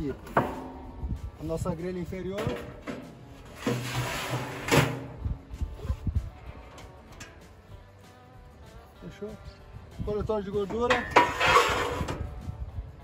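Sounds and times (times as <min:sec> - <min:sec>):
metal grate clanking: 0:00.0 - 0:01.1, 0:02.3 - 0:05.3, 0:06.4 - 0:07.6, 0:10.6 - 0:12.3
metal grate scraping on rails: 0:02.4 - 0:05.2, 0:10.8 - 0:12.3.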